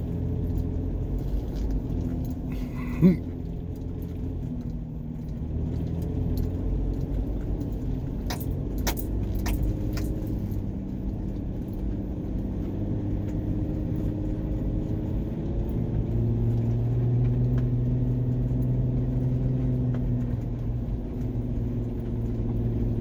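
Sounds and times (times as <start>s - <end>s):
car engine and road rumble: 0.0s - 23.0s.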